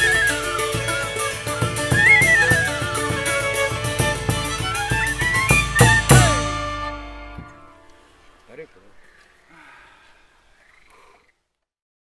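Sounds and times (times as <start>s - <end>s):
faint open-air background: 0.0s - 11.8s.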